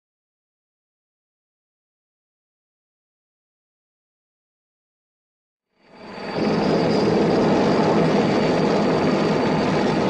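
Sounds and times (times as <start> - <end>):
helicopter engine and rotor noise: 5.8 - 10.0.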